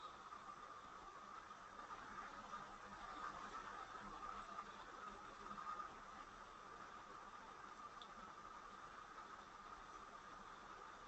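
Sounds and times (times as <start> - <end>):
background hiss with low hum: 0.0 - 11.0.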